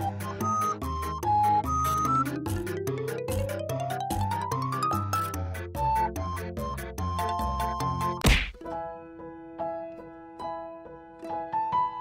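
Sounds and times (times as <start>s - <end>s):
background music: 0.0s - 12.0s
loud thud: 8.2s - 8.6s.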